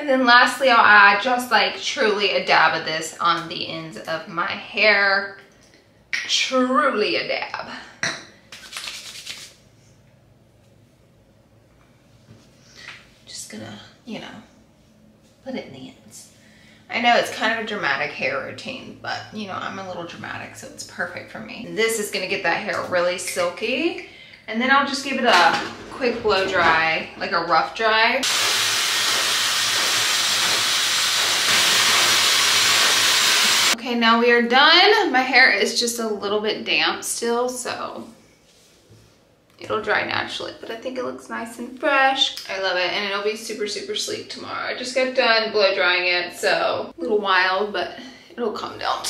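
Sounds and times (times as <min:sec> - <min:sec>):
hands rubbing together: 0:08.5 - 0:09.6
hair dryer blowing air: 0:28.2 - 0:33.8.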